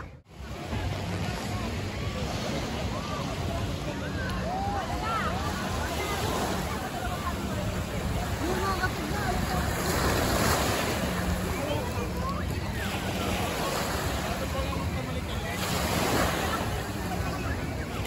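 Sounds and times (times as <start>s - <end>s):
babble of distant voices: 0.0s - 18.0s
waves washing on sandy shore: 0.0s - 18.0s.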